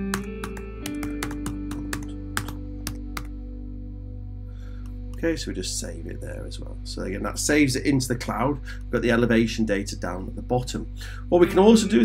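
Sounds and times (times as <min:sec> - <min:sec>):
keyboard typing: 0:00.0 - 0:03.3
guitar music: 0:00.0 - 0:07.3, 0:11.0 - 0:12.0.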